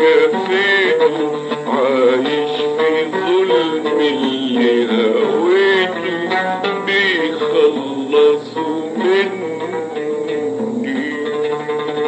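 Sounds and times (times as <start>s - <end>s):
man singing: 0.0s - 12.0s
oud accompaniment: 0.0s - 12.0s.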